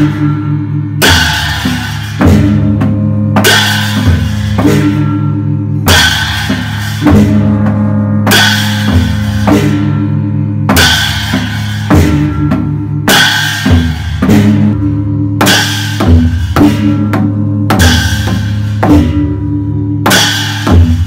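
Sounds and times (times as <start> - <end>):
hanging gongs ringing: 0.0 - 21.0
large cymbals crashing: 0.0 - 21.0.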